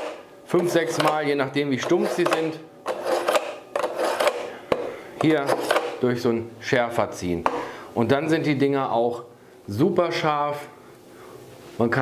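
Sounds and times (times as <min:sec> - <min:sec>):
knife scraping through sharpener: 0:01.8 - 0:04.6, 0:05.2 - 0:06.0.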